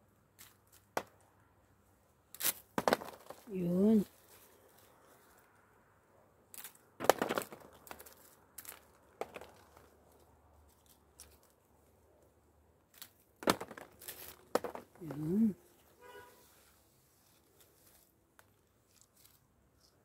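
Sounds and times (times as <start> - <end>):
rake rustling through leaves: 14.0 - 14.4, 15.1 - 18.2, 18.8 - 19.9
person humming: 15.0 - 15.6.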